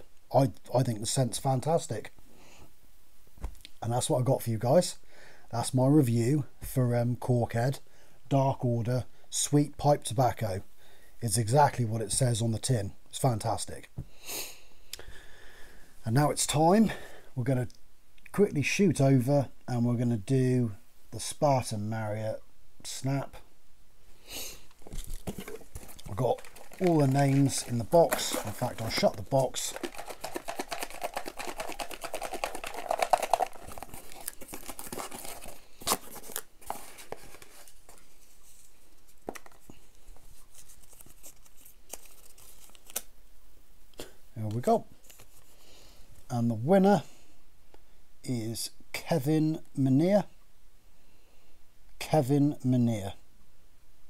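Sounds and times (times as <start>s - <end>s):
paper rustling: 24.8s - 43.1s
paper slips rattling in a box: 24.9s - 37.4s.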